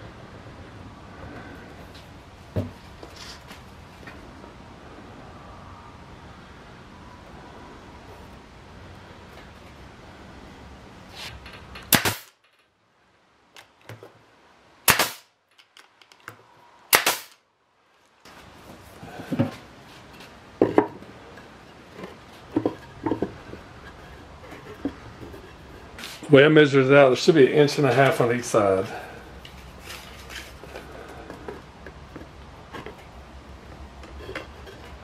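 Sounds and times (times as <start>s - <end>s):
nail gun firing: 11.9s - 12.4s, 14.9s - 15.3s, 16.9s - 17.4s
wood knocking: 20.6s - 21.0s.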